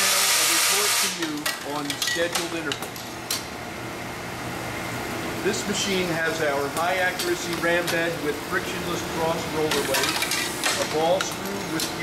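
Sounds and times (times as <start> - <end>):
grinder humming: 0.0 - 1.8.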